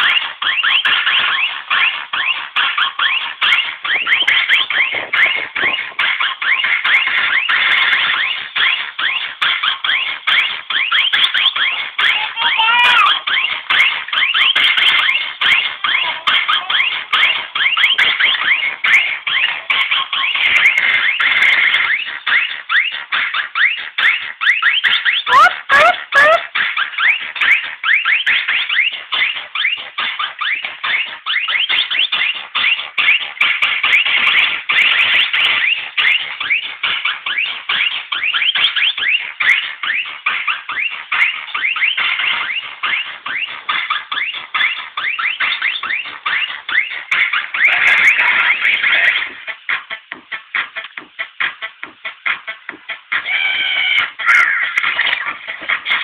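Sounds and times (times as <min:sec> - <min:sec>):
electronic dance music on speaker: 0:00.0 - 0:56.0.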